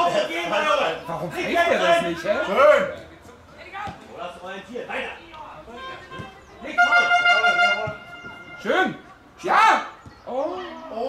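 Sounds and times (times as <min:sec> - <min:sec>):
loud steady horn: 0:05.7 - 0:09.0.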